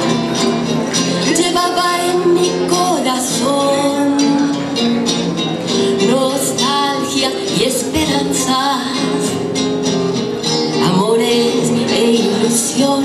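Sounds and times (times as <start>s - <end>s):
nylon-string guitars strumming: 0.0s - 13.0s
woman singing: 1.0s - 4.8s, 5.7s - 9.7s, 10.5s - 13.0s.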